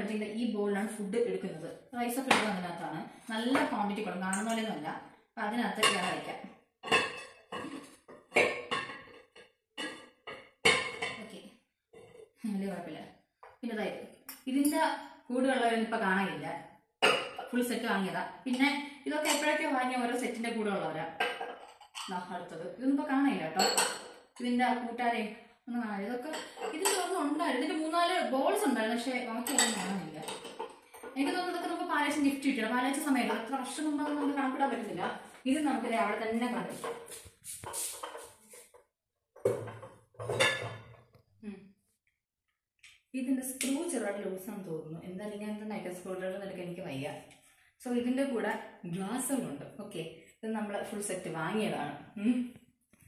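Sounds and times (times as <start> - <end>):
glassware clinking: 21.2 - 22.1, 23.6 - 24.2, 39.5 - 41.0.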